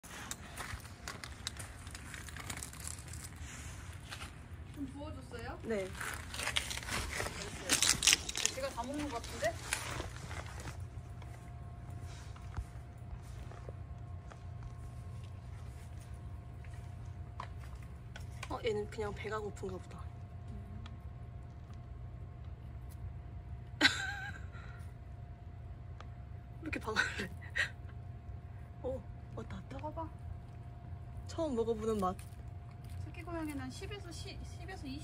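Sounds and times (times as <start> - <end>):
low mechanical hum: 0.0 - 35.0
steady low rumble: 0.0 - 35.0.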